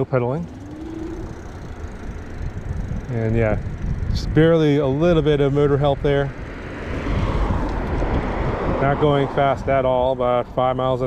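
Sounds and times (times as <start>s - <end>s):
electric motor whine: 0.0s - 9.4s
tyres on road: 0.0s - 11.0s
wind on microphone: 0.4s - 11.0s.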